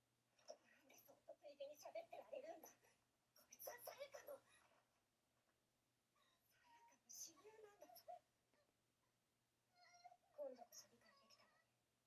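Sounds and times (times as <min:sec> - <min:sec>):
faint voice-like sound: 0:00.4 - 0:04.8, 0:06.2 - 0:08.8, 0:09.7 - 0:11.8.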